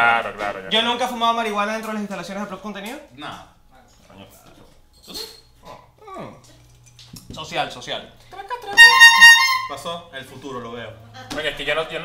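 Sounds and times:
call sliding down in pitch: 8.8s - 9.8s.

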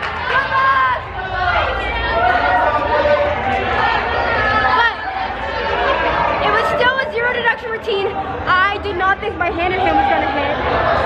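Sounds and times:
young voices talking and laughing: 0.1s - 11.0s.

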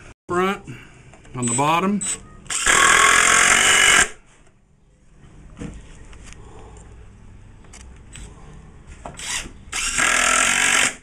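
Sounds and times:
impact driver hammering screw: 9.2s - 11.0s.

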